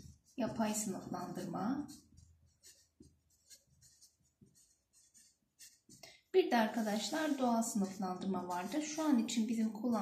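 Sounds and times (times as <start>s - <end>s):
marker scratching on paper: 0.0s - 10.0s.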